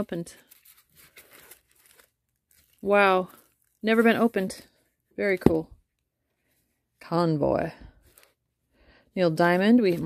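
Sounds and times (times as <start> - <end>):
plastic shrink wrap crinkling: 0.0 - 4.7.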